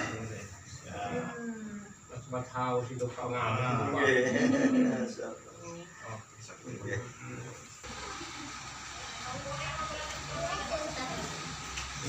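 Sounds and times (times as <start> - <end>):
hissing room noise: 4.6 - 12.0.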